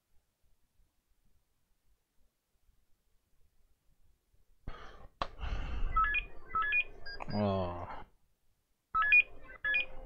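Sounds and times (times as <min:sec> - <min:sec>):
phone ringtone electronic chirps: 0:05.9 - 0:07.3, 0:08.9 - 0:10.0.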